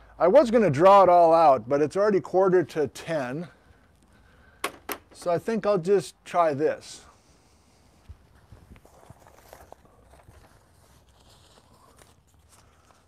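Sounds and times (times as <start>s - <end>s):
faint footsteps: 7.7s - 13.0s.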